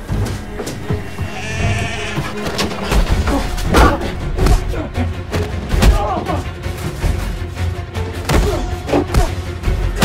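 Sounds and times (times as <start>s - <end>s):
dramatic background music: 0.0s - 10.0s
sheep bleating: 0.7s - 3.6s.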